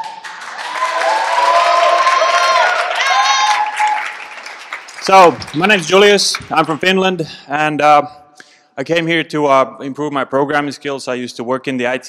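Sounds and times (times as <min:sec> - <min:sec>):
people cheering: 0:00.0 - 0:07.0
audience clapping: 0:00.0 - 0:07.2.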